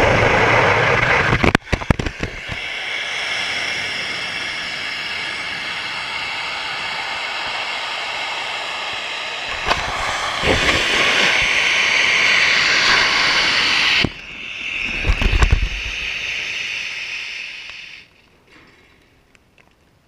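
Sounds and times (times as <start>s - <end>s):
rocket motor hissing: 0.0s - 18.2s
low rumbling: 0.0s - 19.3s.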